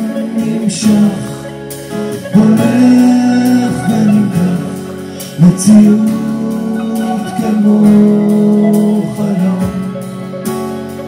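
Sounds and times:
person singing long notes: 0.0s - 10.5s
live band playing: 0.0s - 11.0s.

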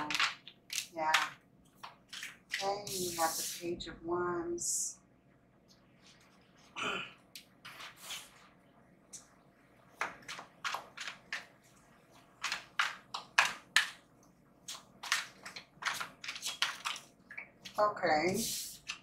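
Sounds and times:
cards being shuffled: 1.8s - 3.2s, 14.7s - 17.8s.

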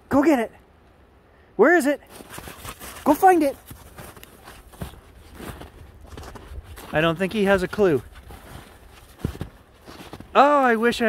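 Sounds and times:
footsteps in snow: 2.0s - 11.0s.

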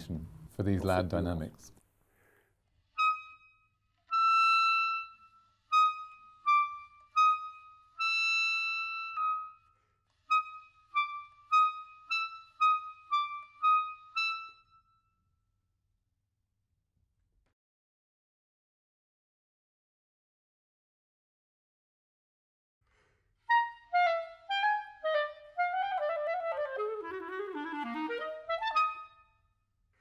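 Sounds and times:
clarinet playing high notes: 2.9s - 9.7s, 10.3s - 14.8s, 23.5s - 29.4s.

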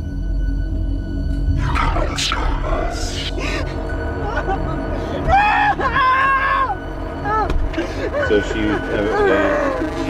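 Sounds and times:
low droning horror score: 0.0s - 10.0s.

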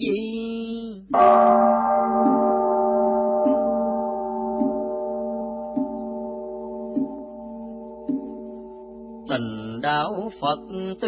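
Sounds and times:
held drone music: 1.2s - 9.3s
soft struck note: 1.4s - 9.3s
man chanting: 9.3s - 11.0s.

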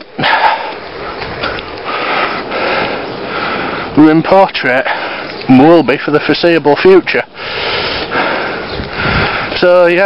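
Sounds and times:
wind rushing past microphone: 0.0s - 4.3s, 7.7s - 10.0s
bicycle riding noise: 0.0s - 10.0s.

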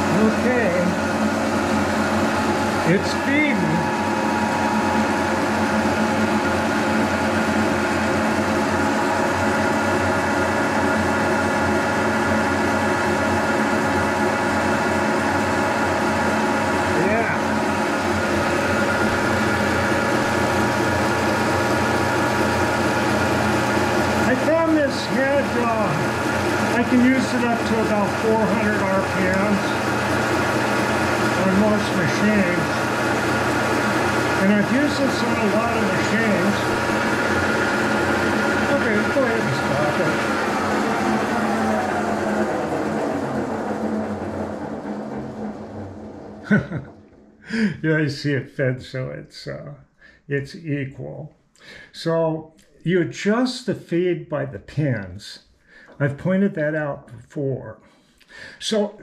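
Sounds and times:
milling machine whining drone: 0.0s - 47.9s
low hum: 23.1s - 47.8s.

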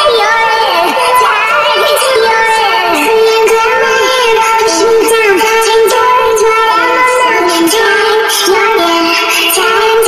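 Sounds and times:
high sung vocal: 0.0s - 10.0s.

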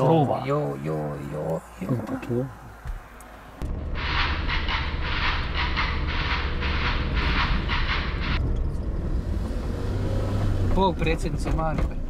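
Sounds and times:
car engine and tyres rumbling: 0.0s - 12.0s.

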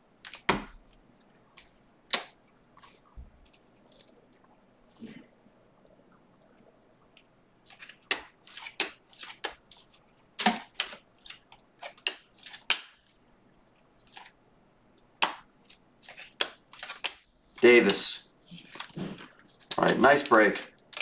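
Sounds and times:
cards being flipped through: 7.7s - 13.2s, 14.1s - 14.4s, 15.7s - 21.0s.

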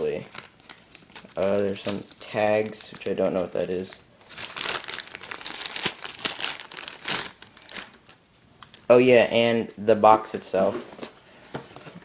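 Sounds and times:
protective wrap crinkling: 0.0s - 8.9s.

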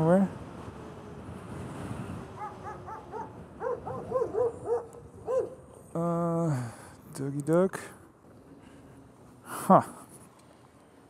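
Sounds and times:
dog barking: 2.4s - 5.6s.

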